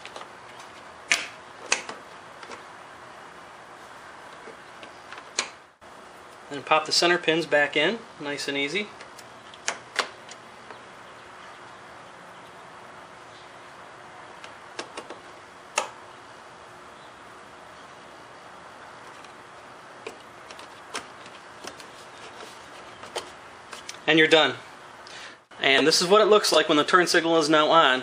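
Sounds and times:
sharp plastic clicks: 0.0s - 2.6s, 9.0s - 10.8s, 14.4s - 16.0s
steady faint hiss: 0.0s - 28.0s.

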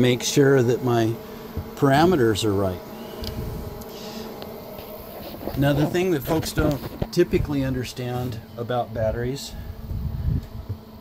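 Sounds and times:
faint steady hum: 0.0s - 11.0s
faint ticks: 3.2s - 4.9s.

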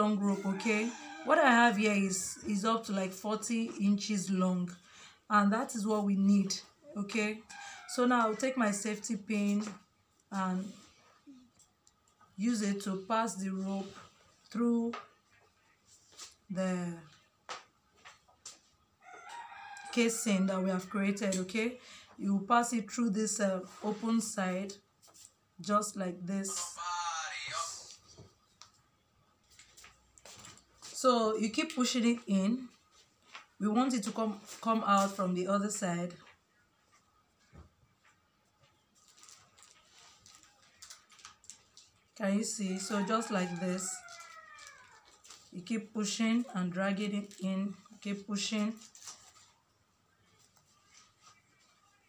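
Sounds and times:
rooster crowing: 0.2s - 1.6s, 7.5s - 8.4s, 19.0s - 20.5s, 42.7s - 45.1s.

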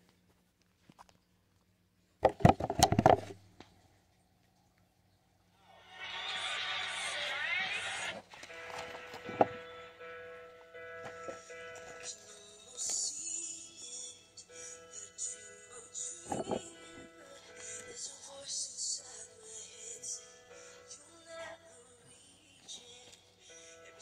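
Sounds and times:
crowd cheering with whistles: 5.8s - 8.7s
music with held notes: 8.3s - 24.0s.

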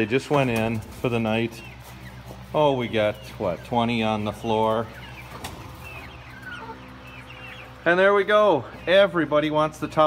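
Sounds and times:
hens chirping and trilling: 0.0s - 10.0s.

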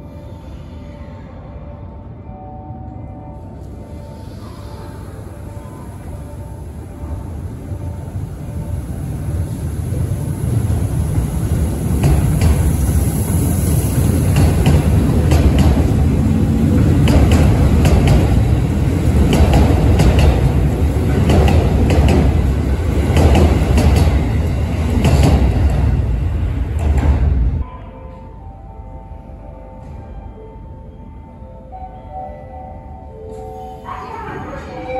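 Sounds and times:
electric train running past: 0.0s - 34.9s.

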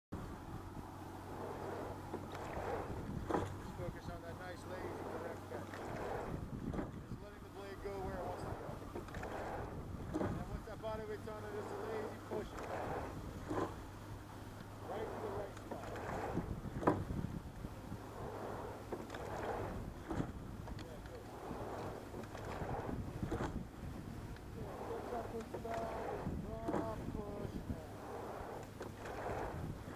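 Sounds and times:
boat moving through water: 0.1s - 29.9s
wind buffeting microphone: 0.1s - 29.9s
oar strokes: 0.2s - 29.9s.

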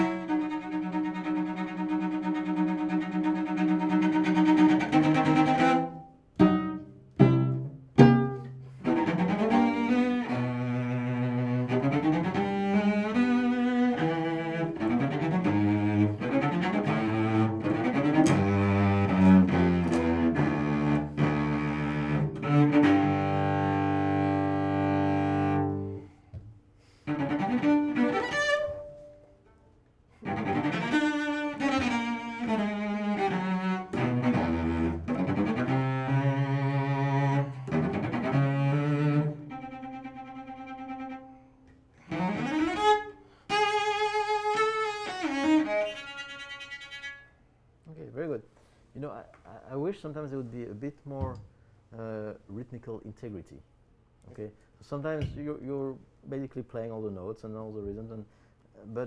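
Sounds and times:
bowed cello: 0.0s - 48.3s.

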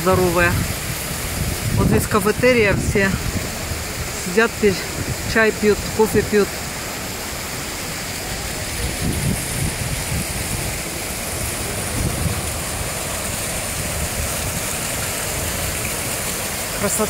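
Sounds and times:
fountain water splashing: 0.0s - 17.0s.

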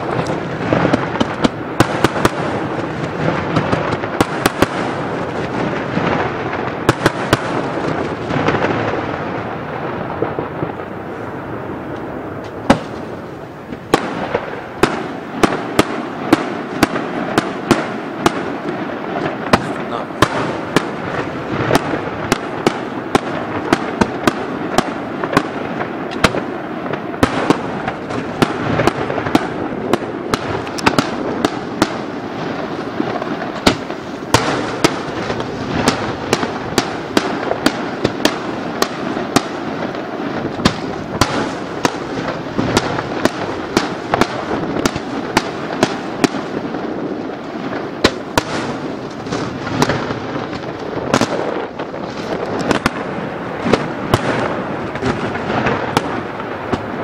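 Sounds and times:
fireworks bursting and crackling: 0.0s - 57.0s
sharp firework bangs: 0.0s - 57.0s.

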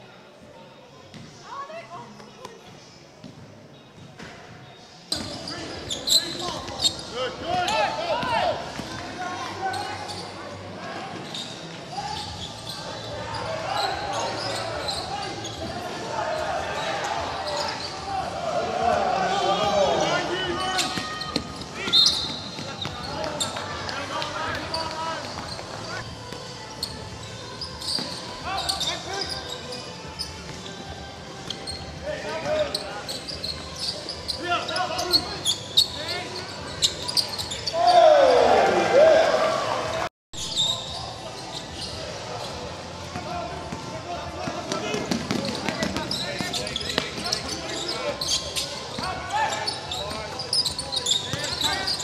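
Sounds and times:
players and spectators voices: 0.0s - 52.0s.

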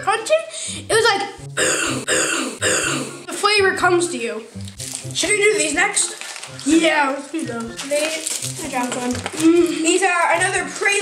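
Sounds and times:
children chewing biscuits: 4.5s - 11.0s.

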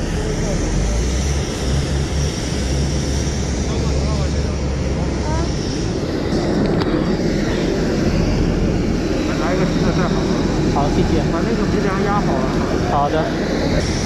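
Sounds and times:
deep low hum: 0.0s - 14.0s
jet aircraft rumble and whine: 0.0s - 14.0s.

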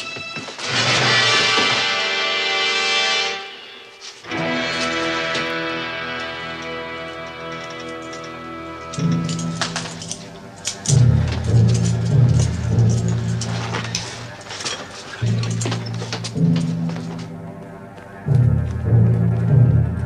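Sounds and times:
dramatic television underscore: 0.0s - 20.0s.

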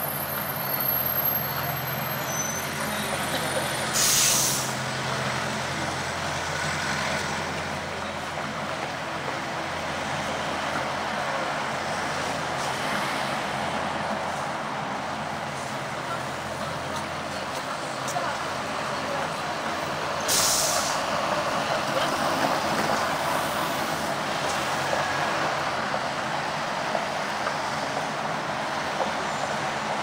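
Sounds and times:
street traffic: 0.0s - 30.0s
bus air brakes hissing: 1.2s - 4.9s, 20.2s - 21.2s.

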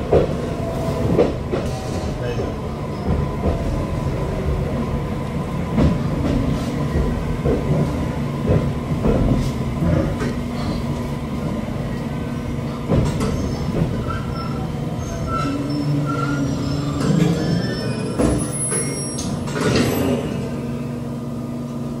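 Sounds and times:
train clunks: 0.0s - 20.7s
electric train running hum: 0.0s - 22.0s.

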